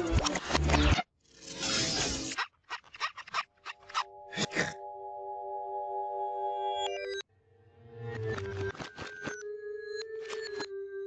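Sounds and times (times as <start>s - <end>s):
held musical chord: 4.1s - 6.8s.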